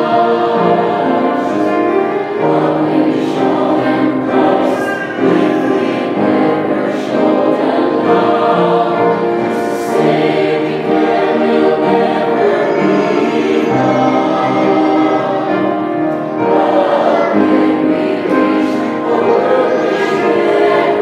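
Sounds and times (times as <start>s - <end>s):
choir singing gospel in harmony: 0.0s - 21.0s.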